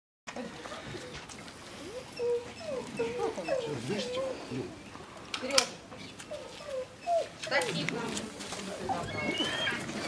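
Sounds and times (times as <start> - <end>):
animal whimpering: 1.8 - 4.8, 6.3 - 7.8, 8.9 - 10.0.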